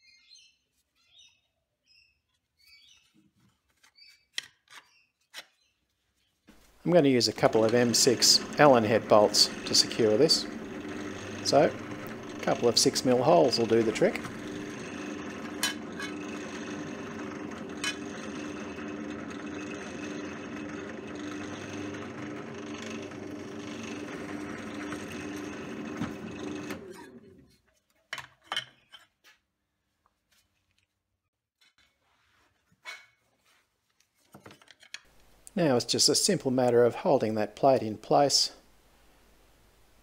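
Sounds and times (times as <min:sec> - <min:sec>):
drill press motor humming: 0:06.6 - 0:27.5.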